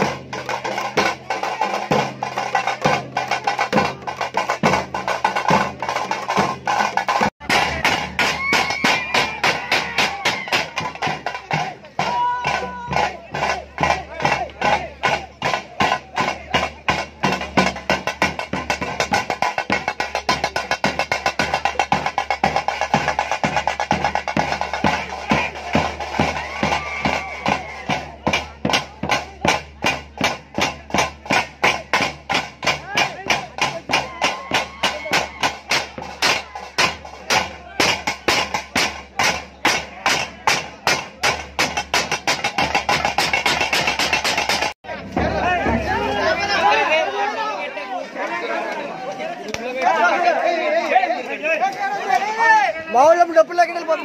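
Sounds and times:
fast drumming: 0:00.0 - 0:47.2
crowd shouting: 0:04.8 - 0:17.8, 0:22.5 - 0:43.2, 0:44.8 - 0:54.0.

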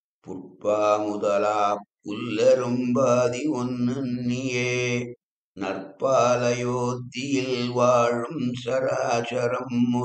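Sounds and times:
man chanting a verse: 0:00.2 - 0:10.0.

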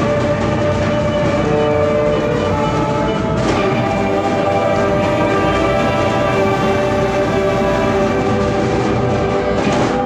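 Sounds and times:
busy drums: 0:00.0 - 0:10.0.

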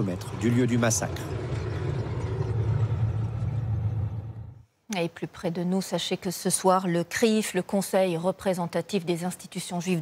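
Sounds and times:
tank engine rumble: 0:00.0 - 0:04.6.

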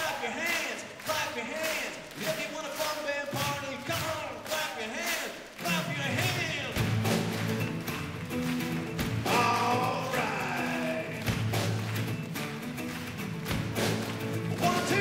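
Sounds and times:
drum hits: 0:03.3 - 0:04.4, 0:05.6 - 0:12.2, 0:13.4 - 0:15.0
acoustic guitar: 0:05.6 - 0:15.0.

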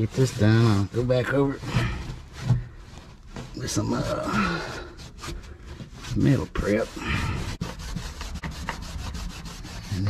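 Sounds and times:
rag scrubbing steel floor: 0:03.3 - 0:10.0.

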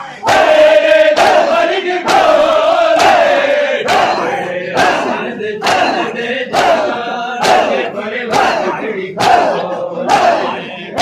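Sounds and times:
men chanting loudly: 0:00.0 - 0:11.0
hands slapping chests in unison: 0:00.2 - 0:11.0.

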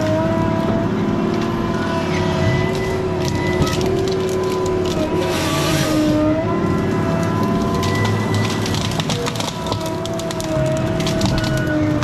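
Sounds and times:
diesel engine and hydraulics running: 0:00.0 - 0:12.0
hydraulic whine: 0:00.1 - 0:07.2.

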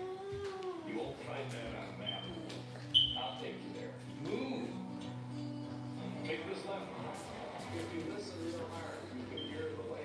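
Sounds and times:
voices from television: 0:00.0 - 0:10.0.

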